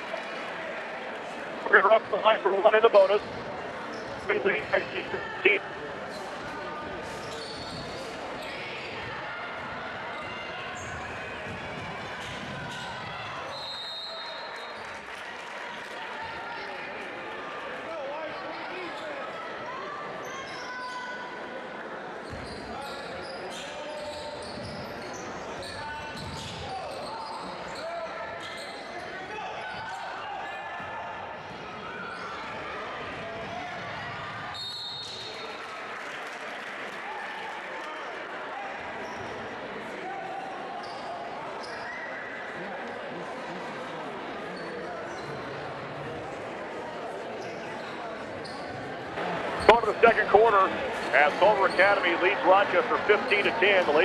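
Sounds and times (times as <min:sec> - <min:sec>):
echoing crowd chatter: 0:00.0 - 0:54.0
players' voices: 0:00.4 - 0:05.8, 0:49.2 - 0:54.0.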